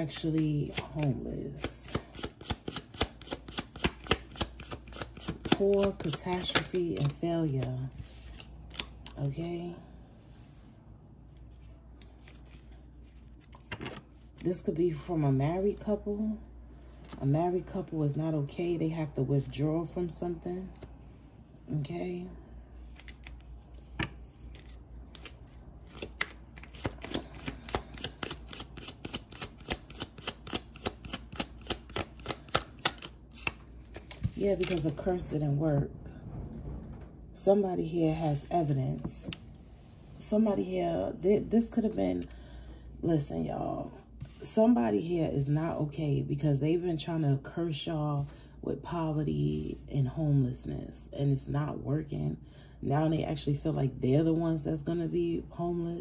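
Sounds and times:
cards being shuffled by hand: 0.0 - 9.2, 11.4 - 14.6, 22.8 - 35.2.

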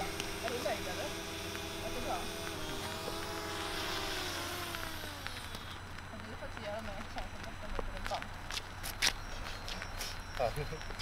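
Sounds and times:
drone propellers whining: 0.0 - 6.2.

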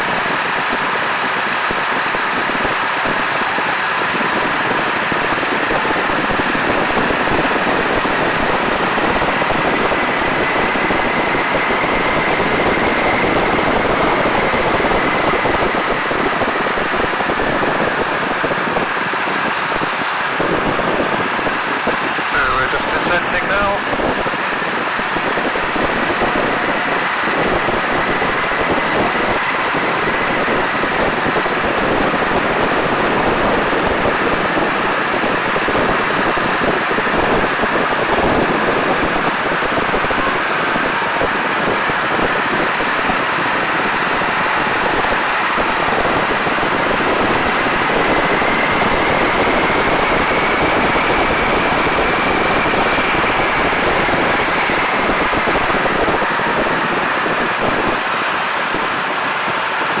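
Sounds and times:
propeller plane engine droning: 0.0 - 60.0
wind rushing: 0.0 - 60.0.

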